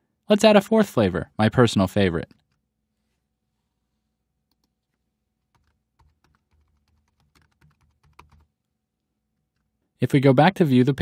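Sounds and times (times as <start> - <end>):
computer keyboard typing: 4.5 - 8.6.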